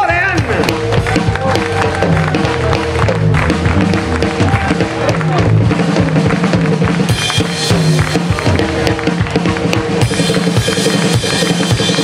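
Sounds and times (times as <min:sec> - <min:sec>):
electric guitars bending notes: 0:00.0 - 0:12.0
steady drum beat: 0:00.0 - 0:12.0.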